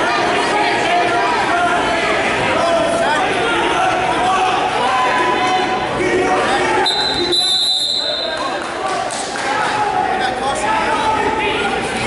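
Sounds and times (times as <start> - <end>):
echoing voices and chatter: 0.0 - 12.0
high whistle blast: 6.9 - 8.4.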